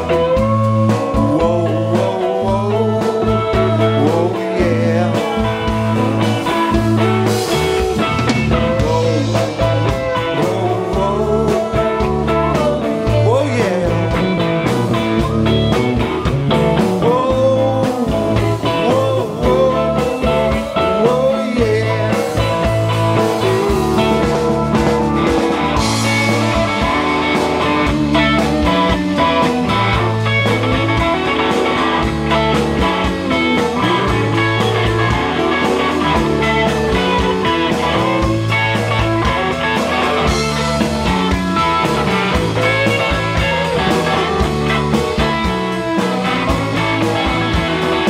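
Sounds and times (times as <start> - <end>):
bending electric guitar lead: 0.0 - 48.0
rock band playing: 0.0 - 48.0.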